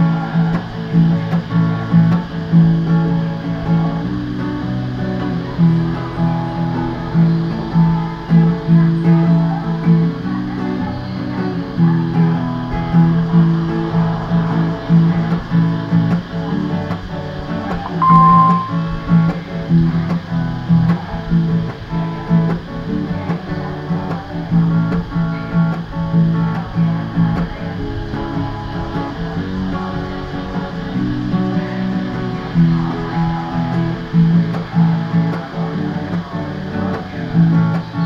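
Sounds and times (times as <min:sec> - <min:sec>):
acoustic guitar strumming: 0:00.0 - 0:38.0.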